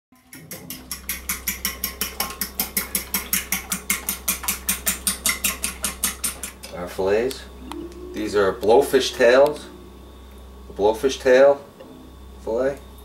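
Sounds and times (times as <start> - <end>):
fork beating egg in bowl: 0.2 - 6.7.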